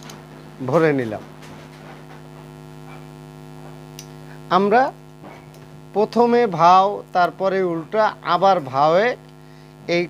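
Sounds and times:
mains electrical hum: 0:00.0 - 0:10.0.

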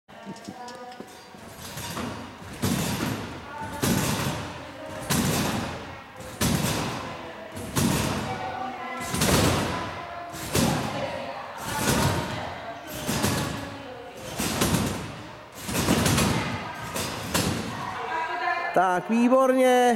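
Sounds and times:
trampoline bouncing thumps: 0:01.3 - 0:18.2.

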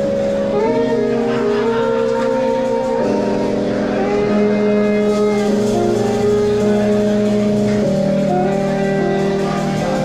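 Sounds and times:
funk band playing: 0:00.0 - 0:10.0.

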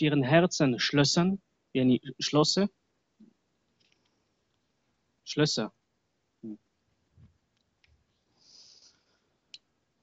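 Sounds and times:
man speaking: 0:00.0 - 0:02.7, 0:05.3 - 0:05.7.

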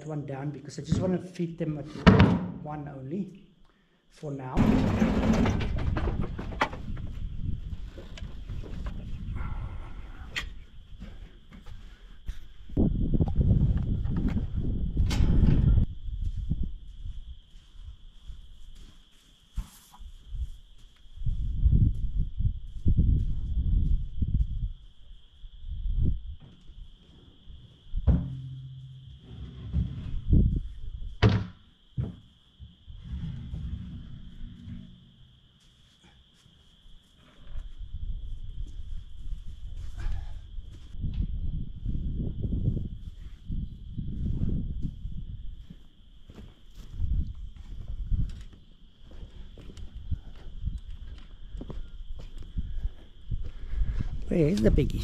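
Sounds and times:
low thuds of barrel set down: 0:04.6 - 0:07.2, 0:28.0 - 0:30.3.

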